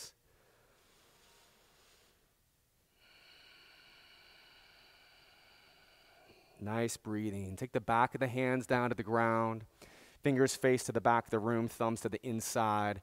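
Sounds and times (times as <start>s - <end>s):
faint breath-like hiss: 0.0s - 7.1s, 9.7s - 10.3s.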